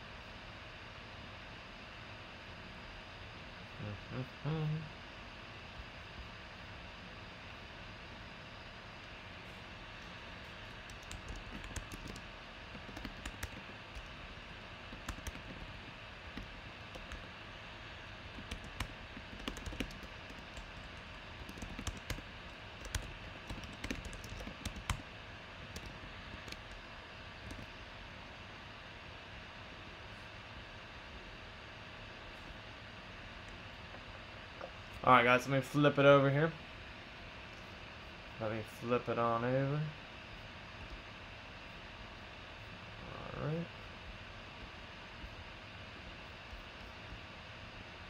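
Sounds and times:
keyboard typing: 10.5s - 17.3s, 18.2s - 25.1s, 25.7s - 26.8s, 27.4s - 27.7s.

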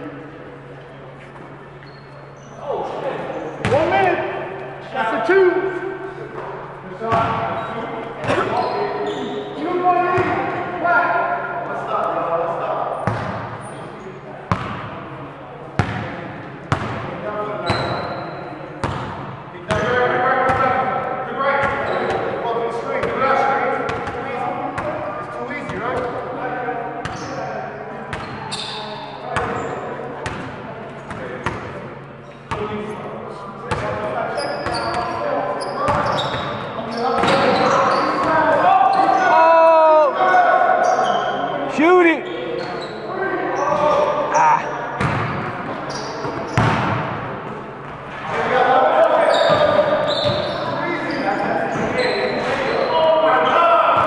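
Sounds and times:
players shouting and chatting: 0.0s - 54.0s
short high squeaks: 1.8s - 2.6s, 7.6s - 9.6s
basketball bouncing on gym floor: 7.1s - 7.5s, 13.0s - 13.6s, 15.8s - 16.1s, 16.7s - 17.1s, 18.8s - 19.8s, 45.0s - 45.5s, 46.3s - 47.2s.

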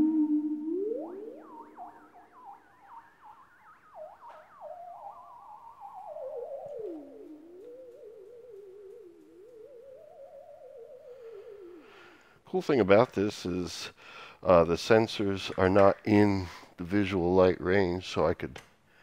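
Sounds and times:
wavering synthesizer tone: 0.0s - 12.2s.

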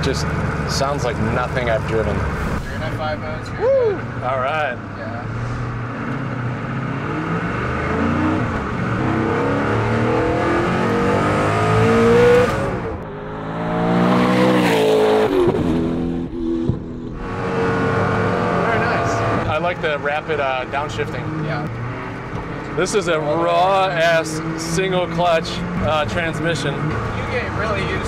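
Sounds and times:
car engine revving: 0.0s - 28.0s.

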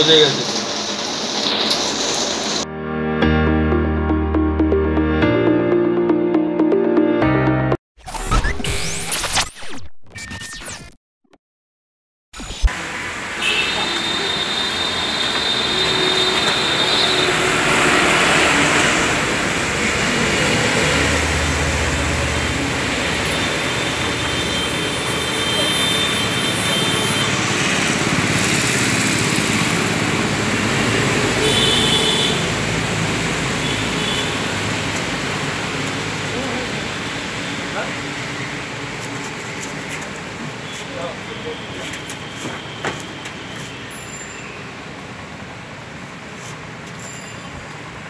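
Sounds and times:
passing traffic: 0.0s - 2.7s, 12.7s - 48.0s.

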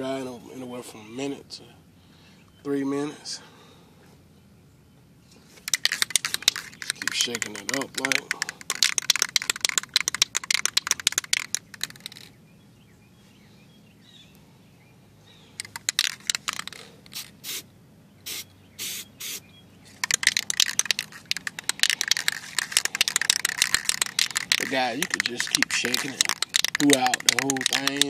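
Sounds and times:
spray can rattling when shaken: 5.6s - 12.3s, 15.6s - 17.6s, 18.3s - 28.0s
short bursts of spray: 5.7s - 10.6s, 16.4s - 27.8s.

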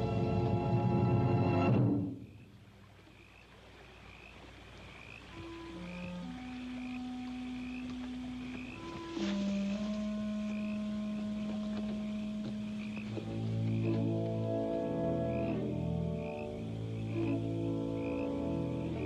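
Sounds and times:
low orchestral notes: 0.0s - 2.2s, 5.3s - 19.0s
frogs chirping: 2.0s - 19.0s.

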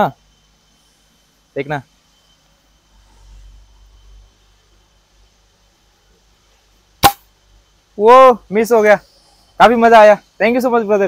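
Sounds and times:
air rifle shot: 7.0s - 7.3s.

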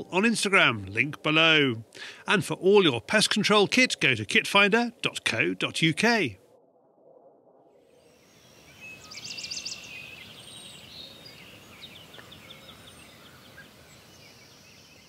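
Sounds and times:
steady background hiss: 0.0s - 6.4s, 7.9s - 15.0s
birdsong trills and chirps: 7.9s - 15.0s.

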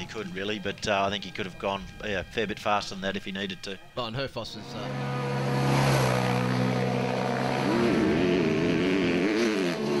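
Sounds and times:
motorcycle engine idling and revving: 4.7s - 10.0s.

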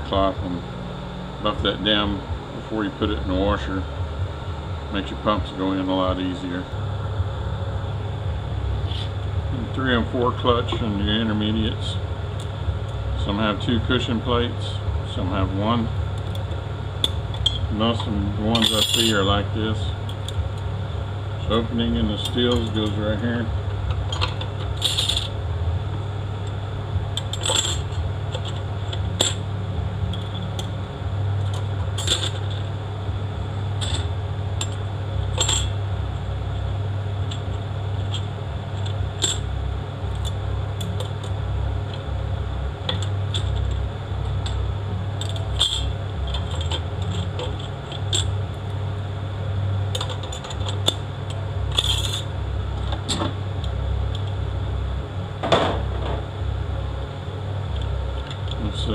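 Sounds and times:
steady low hum: 0.0s - 58.9s
metal clutch plates clinking: 16.2s - 20.4s, 22.0s - 25.4s, 26.4s - 29.4s, 31.4s - 32.7s, 33.7s - 35.8s, 37.2s - 39.5s, 42.8s - 44.6s, 45.2s - 48.5s, 49.9s - 54.3s.

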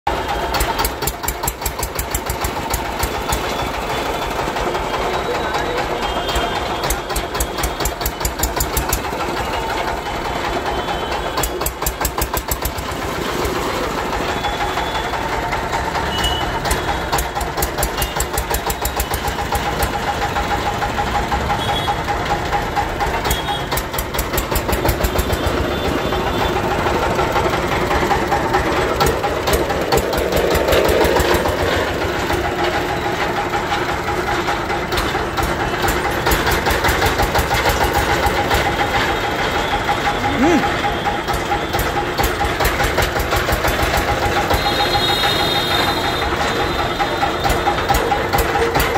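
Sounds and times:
small diesel engine knocking: 0.1s - 48.9s.

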